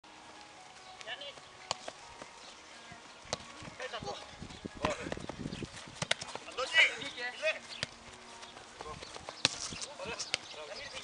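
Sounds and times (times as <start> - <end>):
football kick thuds: 4.8 - 6.4.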